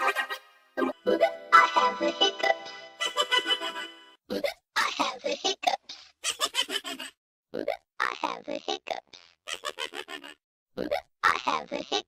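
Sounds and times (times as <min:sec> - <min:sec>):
vocoded cartoon cat voice: 0:07.6 - 0:12.0.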